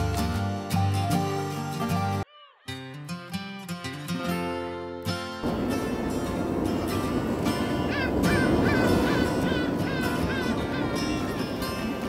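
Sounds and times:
background music: 0.0s - 12.0s
steady rushing wash: 5.4s - 12.0s.

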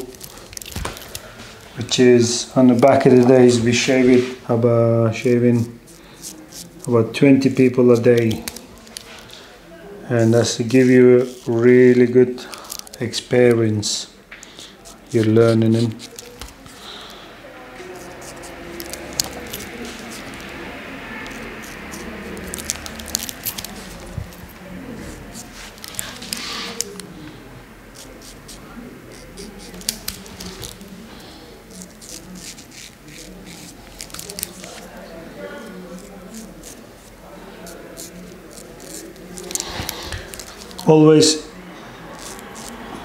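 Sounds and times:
razor scraping stubble: 0.0s - 9.4s, 10.2s - 27.3s, 27.9s - 43.0s.

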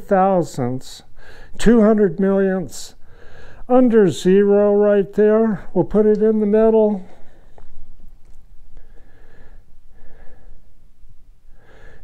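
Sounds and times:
steady low hum: 0.0s - 12.0s
man breathing: 1.2s - 1.6s, 3.0s - 3.7s, 7.0s - 8.0s, 8.7s - 12.0s.

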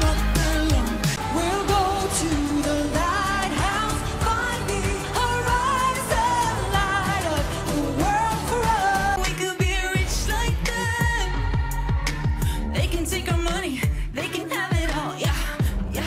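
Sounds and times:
pop song with lead vocal: 0.0s - 16.0s.

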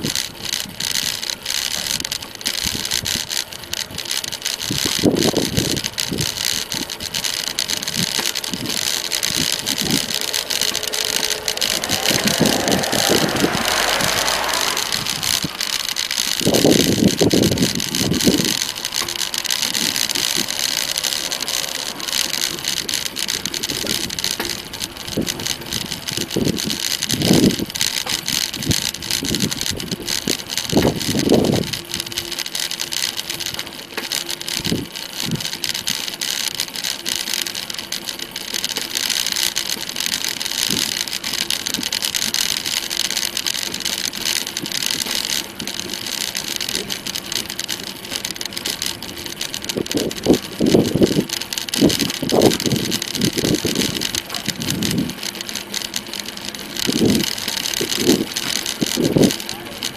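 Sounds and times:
wind rumble on microphone: 0.0s - 32.4s, 34.6s - 35.9s, 43.6s - 56.1s, 56.8s - 59.9s
bicycle road noise: 0.0s - 59.9s.

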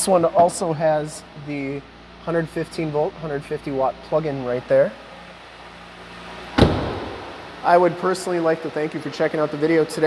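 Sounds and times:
car engine idling: 0.1s - 10.0s
car door slamming: 6.5s - 7.5s.

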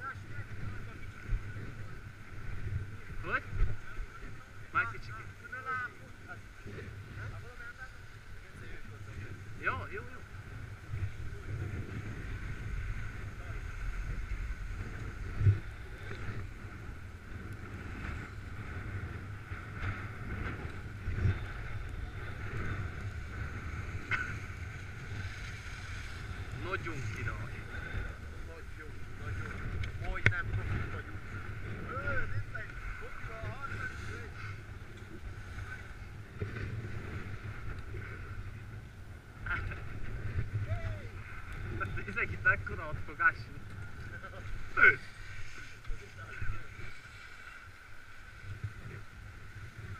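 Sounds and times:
wind on microphone: 0.0s - 49.9s
faint voices: 37.9s - 47.8s.

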